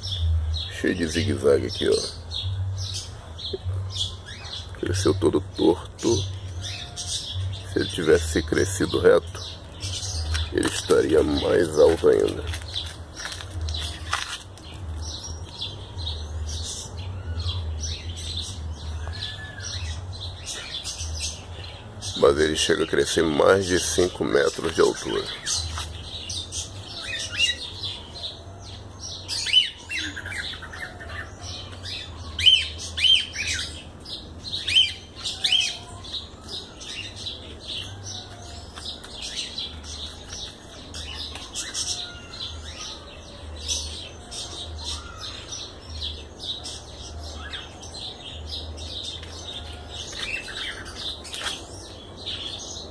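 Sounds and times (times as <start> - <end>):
birds chirping and calling: 0.0 - 52.9.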